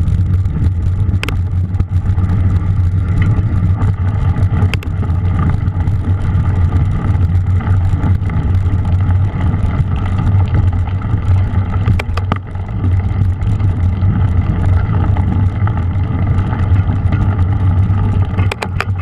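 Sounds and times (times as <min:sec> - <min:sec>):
bike rattling clicks: 0:00.0 - 0:19.0
tyres rumbling on trail: 0:00.0 - 0:19.0
wind on microphone: 0:00.0 - 0:19.0.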